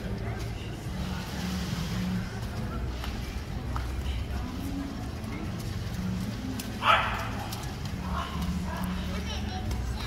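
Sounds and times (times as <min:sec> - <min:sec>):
small dog barking: 0:06.8 - 0:07.3.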